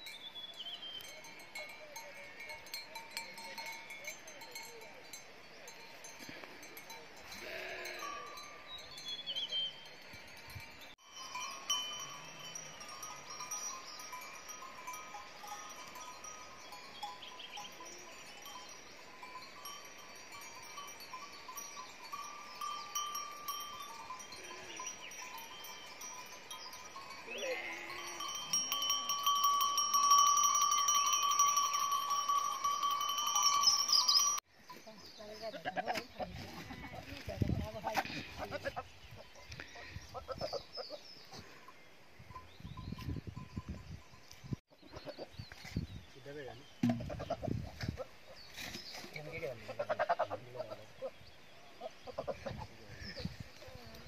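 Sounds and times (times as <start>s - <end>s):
sheep bells ringing: 0.0s - 45.2s.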